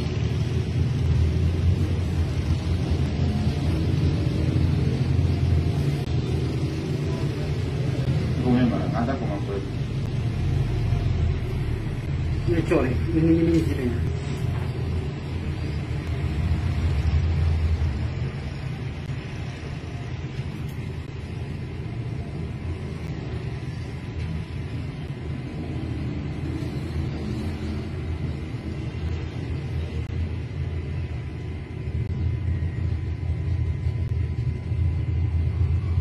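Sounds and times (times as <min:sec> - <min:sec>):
steady low rumble: 0:00.0 - 0:36.0.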